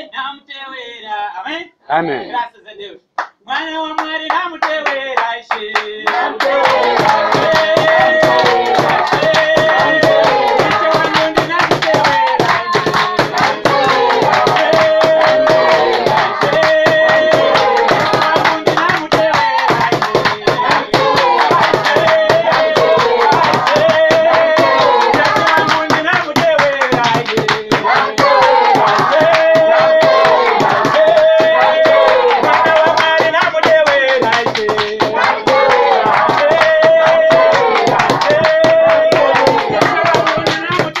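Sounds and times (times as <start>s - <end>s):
fast hand clapping: 4.0s - 41.0s
congregation singing: 4.8s - 41.0s.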